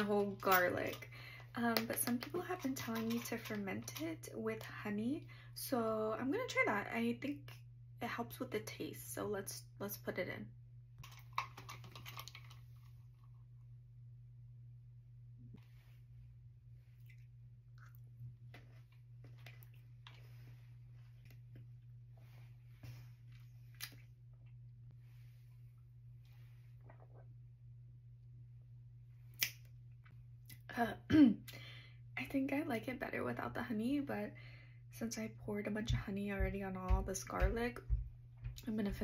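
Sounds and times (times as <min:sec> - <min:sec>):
faint low hum: 0:00.0 - 0:39.0.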